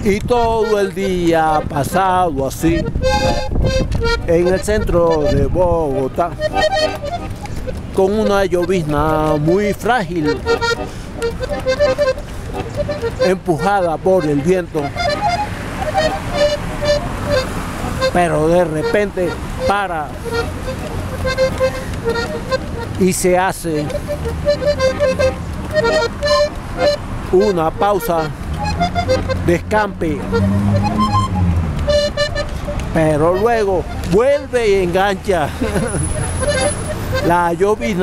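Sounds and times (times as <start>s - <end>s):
city traffic noise: 0.0s - 38.0s
short pitched notes: 30.2s - 32.8s.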